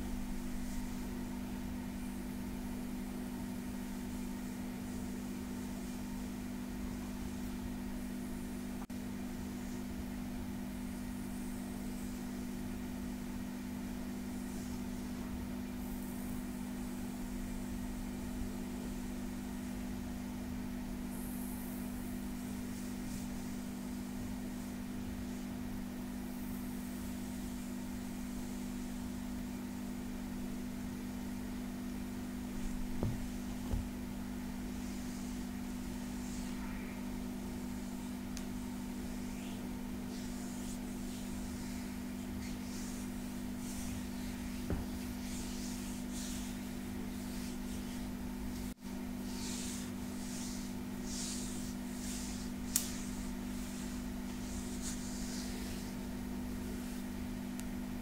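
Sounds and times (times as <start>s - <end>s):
steady low hum: 0.0s - 58.0s
palms rubbing skin: 32.4s - 57.6s.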